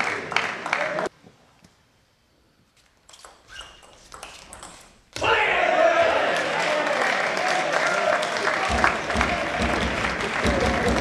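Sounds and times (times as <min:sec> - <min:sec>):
crowd clapping rhythmically: 0:00.0 - 0:01.1, 0:06.3 - 0:11.0
loud crowd noise: 0:05.2 - 0:11.0.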